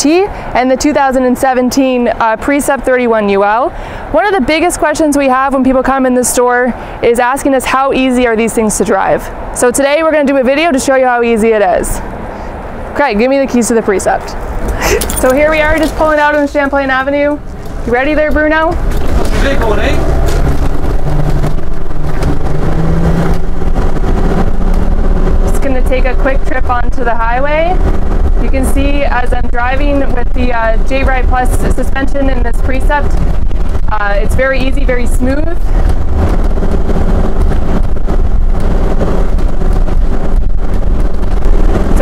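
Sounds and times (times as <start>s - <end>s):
engine and road rumble: 0.0s - 42.0s
wind noise: 0.0s - 42.0s.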